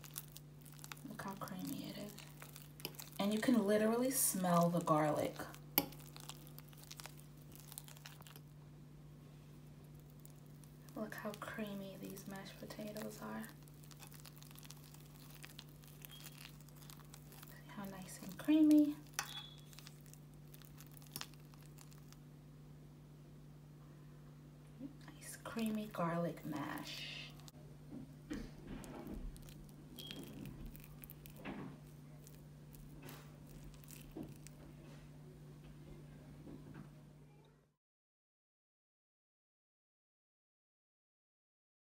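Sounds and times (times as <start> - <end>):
fork stirring mashed potatoes: 0.0 - 8.4, 9.9 - 22.2, 28.7 - 34.6
low steady hum: 0.0 - 37.8.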